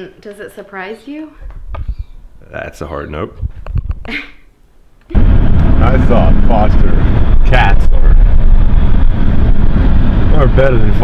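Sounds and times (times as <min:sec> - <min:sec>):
car cabin road and engine rumble: 0:05.1 - 0:11.0.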